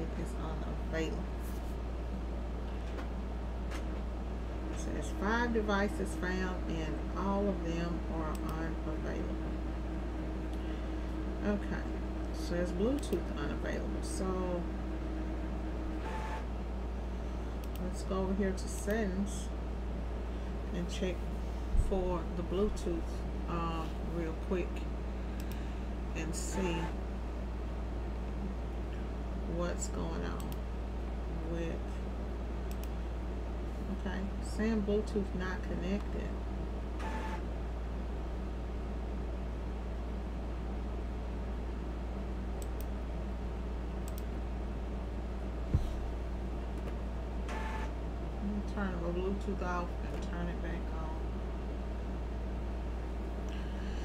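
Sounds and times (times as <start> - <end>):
low hum: 0.0 - 54.0
computer mouse clicks: 44.0 - 44.3.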